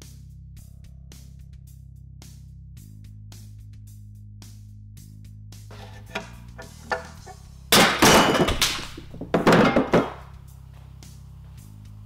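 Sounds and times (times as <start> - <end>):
background music: 5.1 - 12.0
metal clunks on wooden bench: 5.7 - 10.3.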